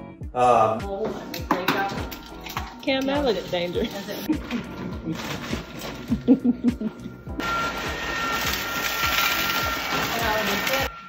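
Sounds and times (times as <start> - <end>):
ice cream maker motor whining: 7.3 - 11.0.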